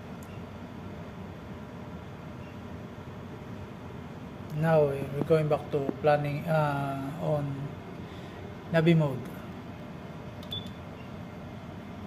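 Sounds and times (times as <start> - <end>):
steady background hum: 0.0 - 12.0
short click: 10.4 - 10.8.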